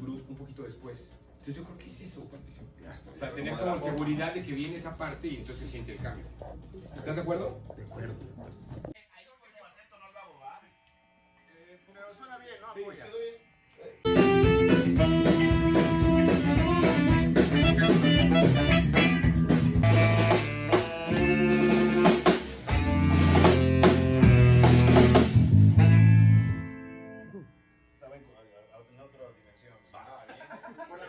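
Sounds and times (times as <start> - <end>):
sustained pitched notes: 5.0 - 9.0, 12.8 - 29.9
drum kit: 14.1 - 26.7
electric bass: 14.1 - 27.5.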